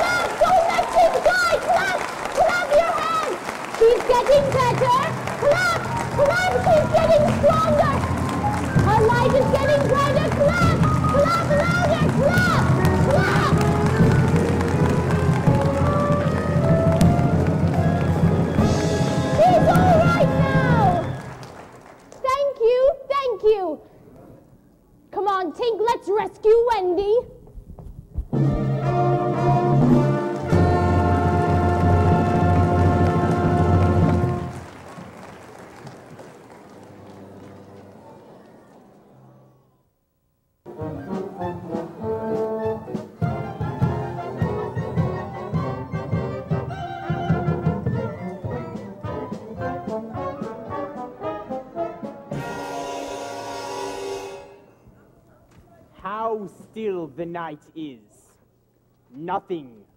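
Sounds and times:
orchestral music with brass: 4.5 - 21.5, 28.4 - 34.7, 40.7 - 54.8.

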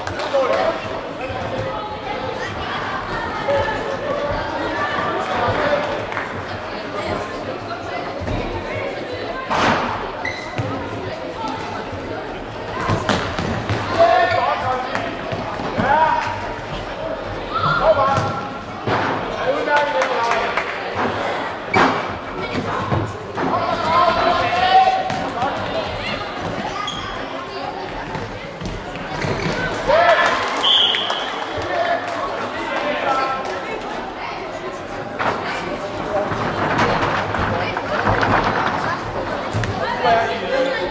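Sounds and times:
football bouncing on hall floor: 9.4 - 11.6, 12.7 - 16.8, 17.5 - 19.2.

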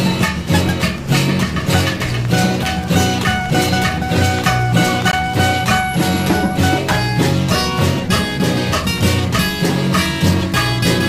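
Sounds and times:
instrumental guitar music with beat: 0.0 - 11.0.

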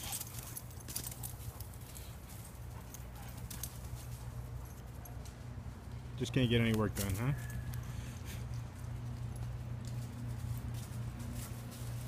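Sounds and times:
dry leaves crackling: 6.6 - 12.0.

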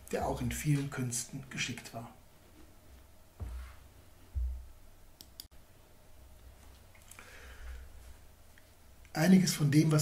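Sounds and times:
dull low thump: 4.4 - 4.7
computer mouse clicks: 5.2 - 5.5.

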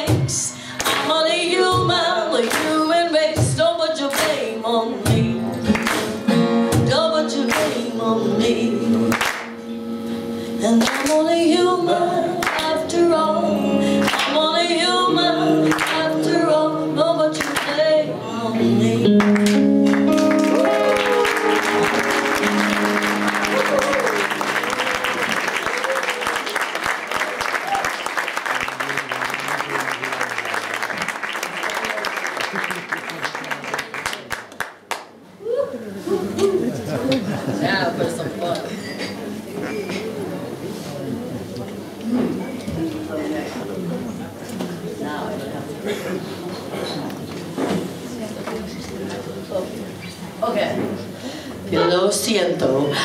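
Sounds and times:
person singing: 0.0 - 9.1, 10.2 - 25.4
acoustic band playing: 0.0 - 27.8, 36.0 - 53.0
handclaps: 0.8 - 1.1, 2.4 - 2.8, 4.1 - 4.4, 5.7 - 6.2, 7.5 - 7.8, 9.1 - 9.5, 10.8 - 11.2, 14.0 - 14.4, 15.7 - 16.0, 17.4 - 17.8, 19.2 - 35.1
audience applauding and cheering: 19.2 - 35.4.

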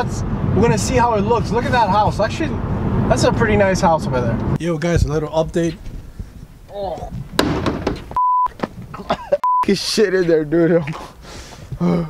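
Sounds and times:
high censor bleep: 8.2 - 8.5, 9.4 - 9.7.

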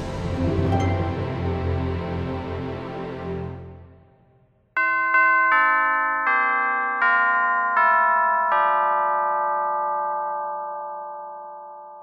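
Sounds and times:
descending bell chimes: 0.0 - 2.1.

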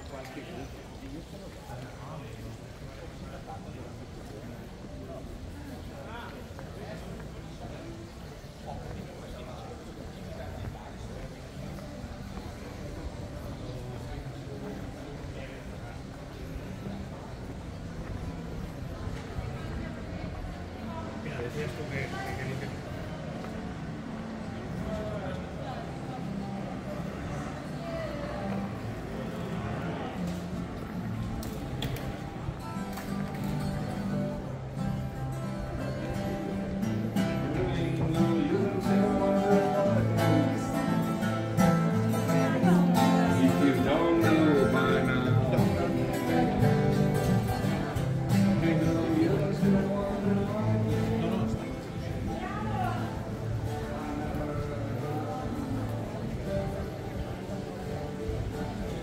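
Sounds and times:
acoustic guitar playing: 28.4 - 59.0.

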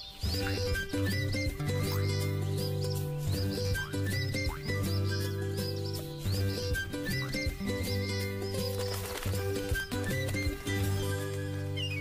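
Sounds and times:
instrumental music with bass: 0.2 - 12.0.

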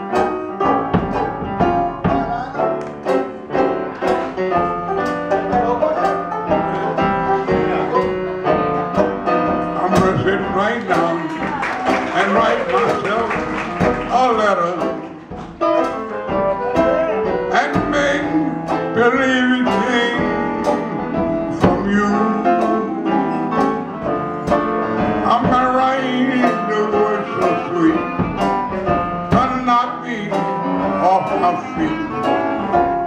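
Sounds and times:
clarinet melody: 0.0 - 11.8, 12.4 - 33.0
drums keeping a steady beat: 0.0 - 33.0
piano: 0.0 - 33.0
strummed banjo: 0.0 - 33.0.

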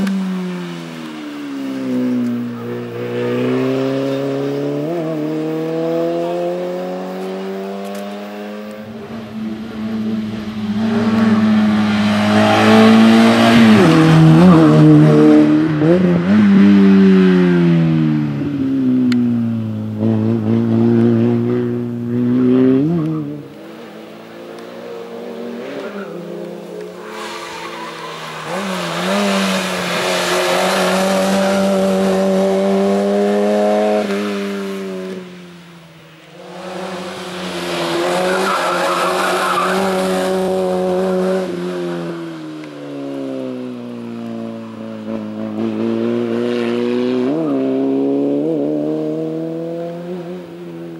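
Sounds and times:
race car engine revving: 2.0 - 18.1, 19.5 - 35.4, 36.1 - 42.6, 45.0 - 50.9.

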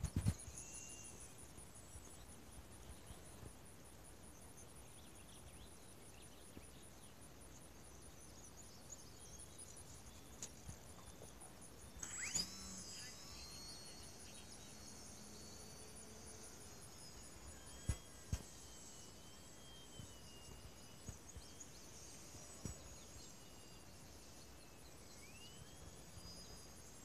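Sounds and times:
thin rising whine: 0.0 - 3.6, 8.2 - 27.0
insects trilling: 0.0 - 27.0.

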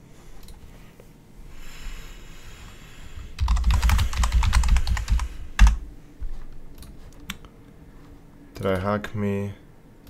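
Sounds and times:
computer keyboard typing: 3.4 - 5.8.

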